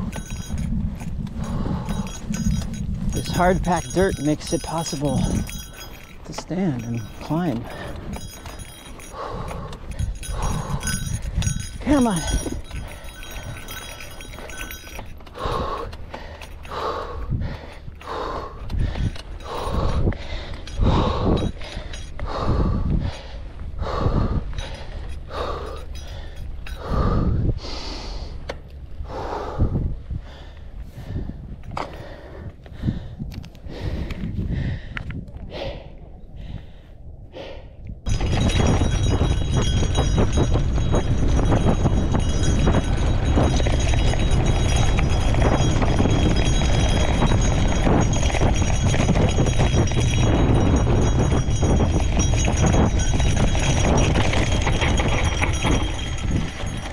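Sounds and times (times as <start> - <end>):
bicycle tyre rumble on dirt: 0.0 - 35.8, 38.0 - 56.9
heavy rhythmic breathing: 0.0 - 56.9
wind rush on microphone: 0.0 - 56.9.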